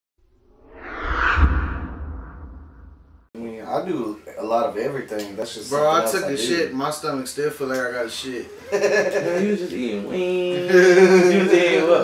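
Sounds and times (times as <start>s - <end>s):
rushing whoosh: 0.4s - 3.3s
deep low rumble: 0.5s - 3.3s.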